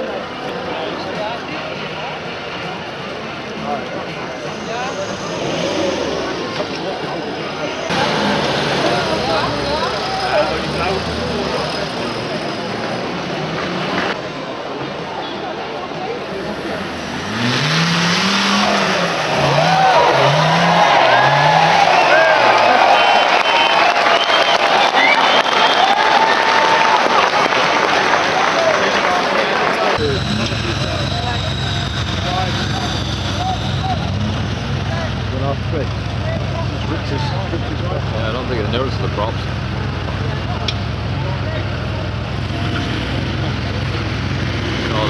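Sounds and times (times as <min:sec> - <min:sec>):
voices in background: 0:00.0 - 0:17.2, 0:24.2 - 0:45.0
off-road vehicle engine revving: 0:04.0 - 0:14.2, 0:16.3 - 0:23.7, 0:29.9 - 0:45.0.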